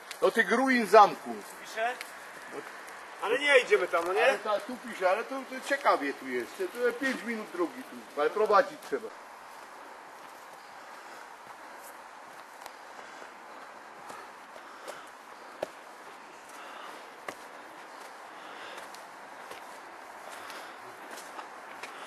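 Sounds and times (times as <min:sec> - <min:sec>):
footsteps on dirt path: 0:00.0 - 0:22.0.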